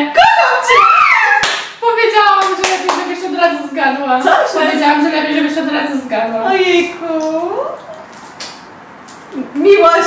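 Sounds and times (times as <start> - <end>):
sharp hand claps: 1.4 - 1.8, 2.4 - 3.1.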